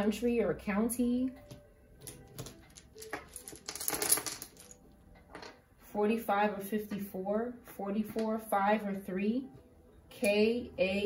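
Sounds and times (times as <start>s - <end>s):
dice rattling in cloth pouch: 2.3s - 4.8s.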